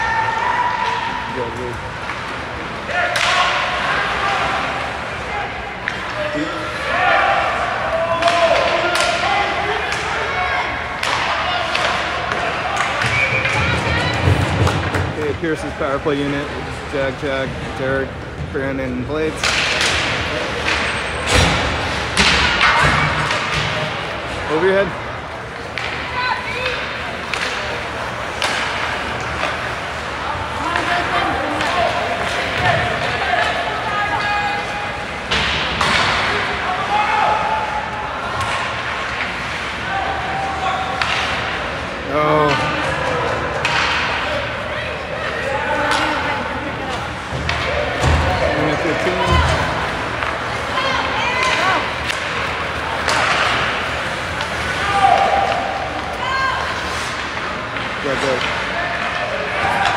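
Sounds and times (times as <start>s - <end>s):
people shouting: 0.0s - 1.3s, 36.0s - 38.7s, 50.6s - 57.1s, 58.6s - 59.9s
puck and sticks slamming boards: 8.2s - 9.3s, 11.0s - 15.3s, 19.3s - 24.7s, 25.6s - 29.8s, 30.6s - 33.6s, 35.2s - 37.4s, 40.7s - 41.8s, 42.4s - 44.4s, 47.2s - 59.9s.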